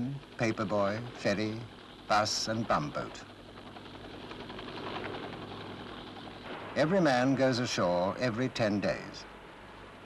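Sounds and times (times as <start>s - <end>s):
helicopter engine and rotor: 0.0s - 9.3s.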